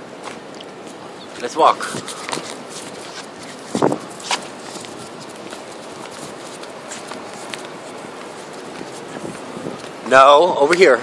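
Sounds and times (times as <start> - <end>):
outdoor background hiss: 0.0 - 11.0
footsteps on concrete: 0.2 - 11.0.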